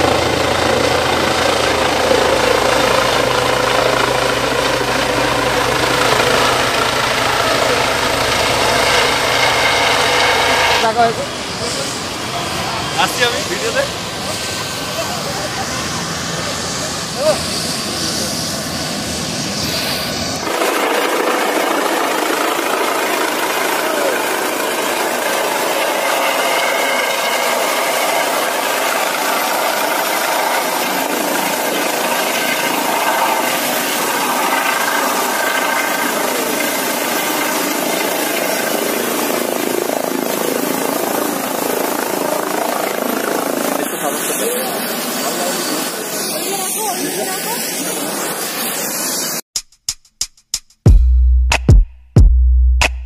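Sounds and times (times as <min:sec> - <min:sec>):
helicopter hovering: 0:00.0 - 0:49.4.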